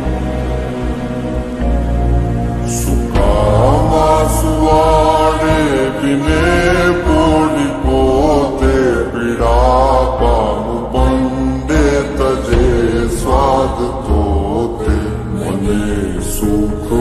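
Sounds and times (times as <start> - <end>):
devotional song: 0.0 - 17.0.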